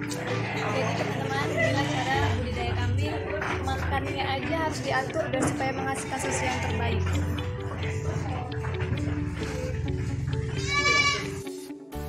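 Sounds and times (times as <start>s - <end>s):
background music: 0.0s - 12.0s
goat bleating: 6.2s - 7.0s, 10.4s - 11.4s.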